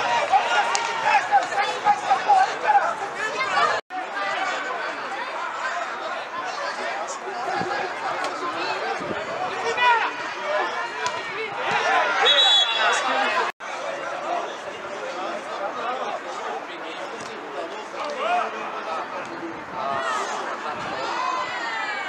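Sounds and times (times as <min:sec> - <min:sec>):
players and spectators shouting: 0:00.0 - 0:16.7, 0:19.8 - 0:22.0.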